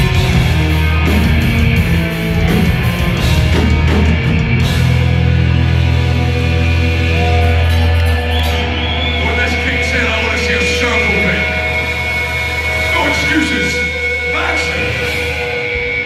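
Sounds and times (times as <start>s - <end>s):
metal band playing live: 0.0s - 16.0s.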